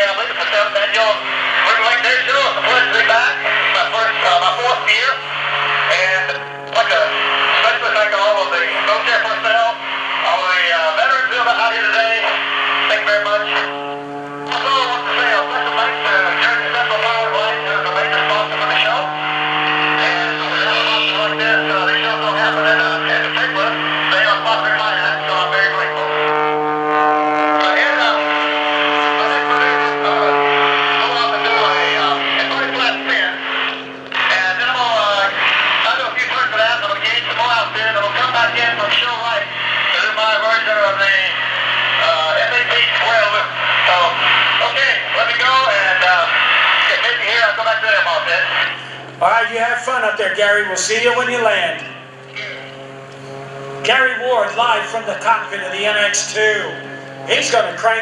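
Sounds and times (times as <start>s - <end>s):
man talking over crackly radio: 0.0s - 52.9s, 53.7s - 58.0s
plane engine and propeller drone: 0.0s - 58.0s.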